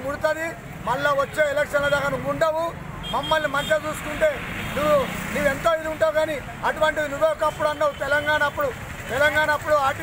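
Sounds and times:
man speaking: 0.0 - 10.0
road traffic rumble: 0.0 - 10.0.

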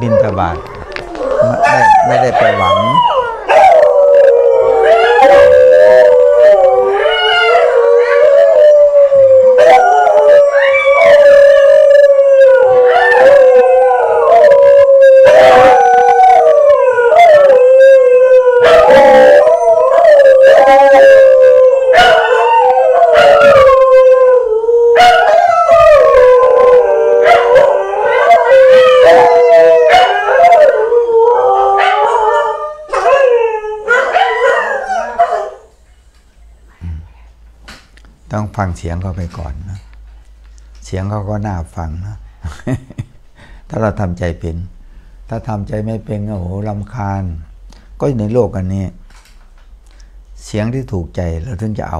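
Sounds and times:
people speaking: 0.0 - 0.7, 1.3 - 3.0, 36.7 - 37.2, 38.3 - 39.9
dogs howling: 0.0 - 35.7.

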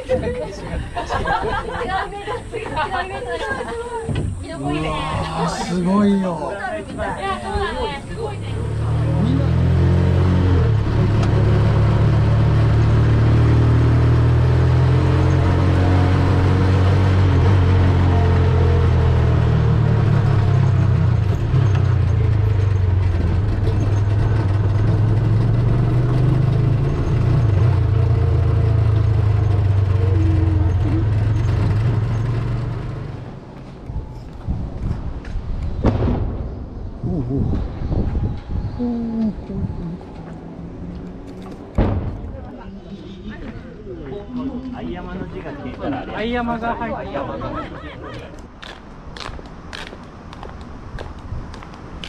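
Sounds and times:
road noise: 0.0 - 52.0
vehicle engine droning: 0.0 - 52.0.

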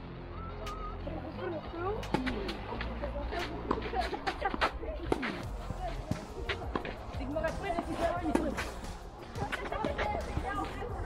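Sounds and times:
background music: 0.0 - 11.0
tennis ball struck by rackets: 1.9 - 2.6, 3.3 - 5.5, 6.1 - 10.7
tennis ball bouncing on clay: 1.9 - 10.8.

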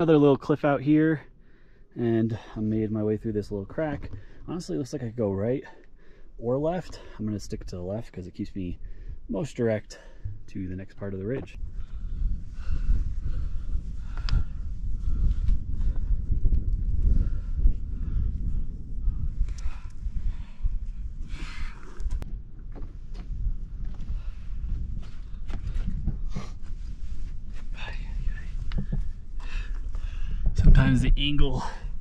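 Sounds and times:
low microphone rumble: 10.3 - 32.0.

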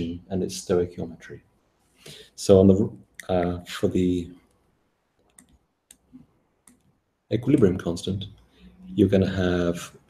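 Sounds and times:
computer mouse clicking: 4.4 - 6.9.

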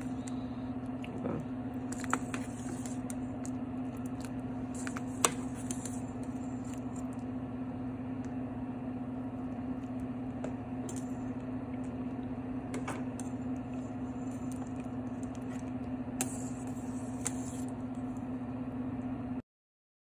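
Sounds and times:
kitchen appliance humming: 0.0 - 19.4.

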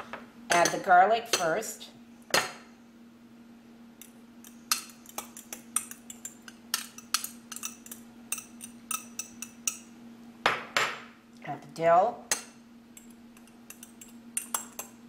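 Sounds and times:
fork clinking against glass bowls: 4.7 - 9.9, 13.0 - 14.9.

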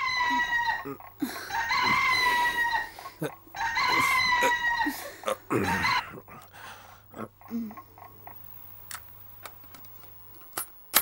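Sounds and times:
rooster crowing: 0.0 - 6.1.

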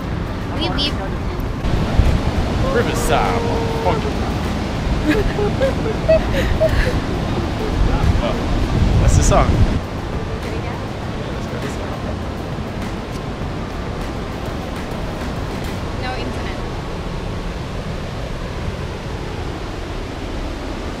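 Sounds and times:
river water rushing over weir: 0.0 - 21.0.

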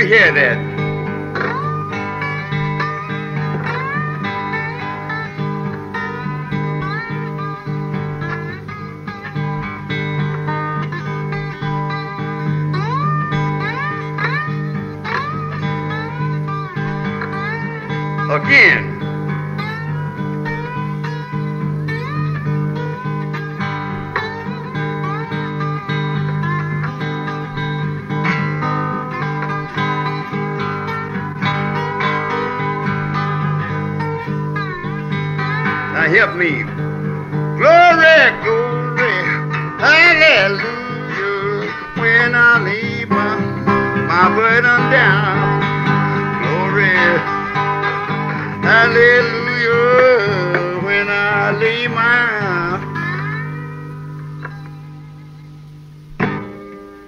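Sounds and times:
acoustic blues guitar: 0.0 - 57.0.

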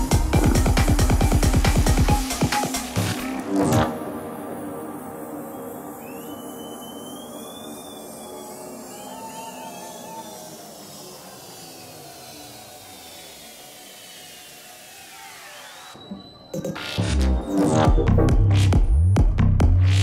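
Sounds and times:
synth sweeps falling in pitch: 3.4 - 18.3.

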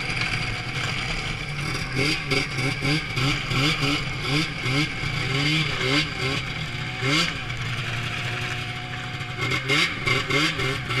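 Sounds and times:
snowmobile engine running: 0.0 - 11.0.

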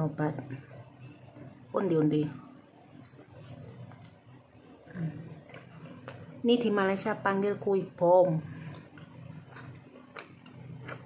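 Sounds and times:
low steady hum: 0.0 - 11.0
biting and chewing snack: 8.6 - 11.0.

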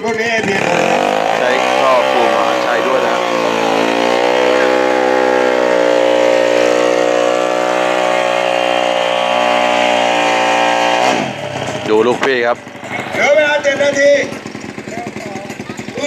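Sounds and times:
motorcycle engine at high revs: 0.0 - 16.0.

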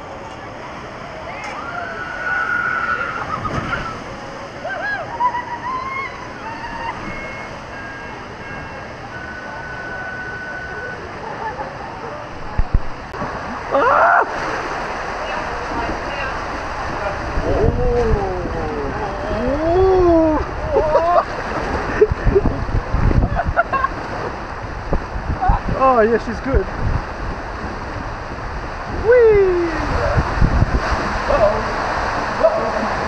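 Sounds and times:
water rushing along a slide: 0.0 - 33.0
person crying out: 13.7 - 14.3, 17.5 - 21.2, 29.0 - 30.2.

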